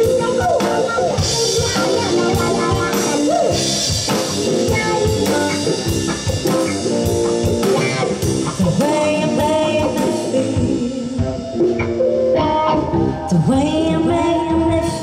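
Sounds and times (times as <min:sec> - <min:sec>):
drum kit: 0:00.0 - 0:15.0
electric guitar: 0:00.0 - 0:15.0
keyboard: 0:00.0 - 0:15.0
woman singing: 0:08.6 - 0:11.6, 0:12.3 - 0:15.0.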